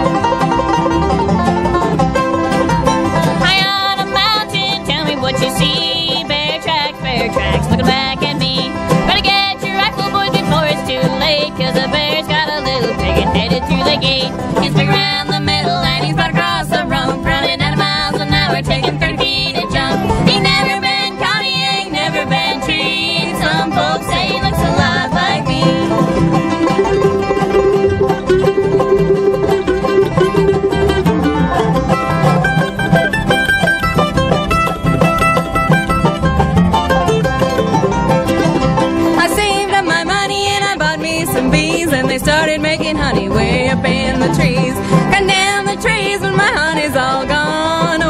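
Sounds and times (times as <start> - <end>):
bluegrass band playing: 0.0 - 48.0.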